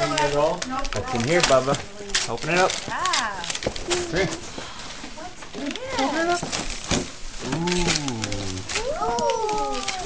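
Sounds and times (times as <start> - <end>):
wrapping paper rustling and tearing: 0.0 - 10.0.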